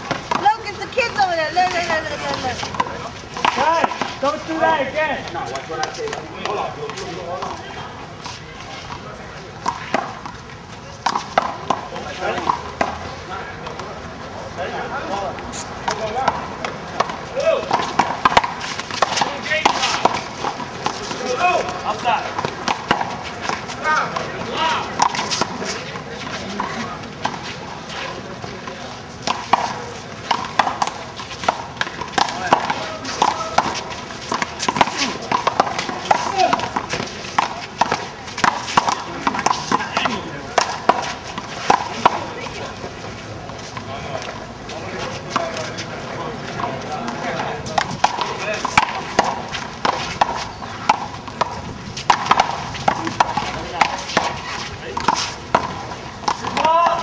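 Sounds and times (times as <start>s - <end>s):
players calling out: 0.1s - 8.9s, 14.4s - 57.0s.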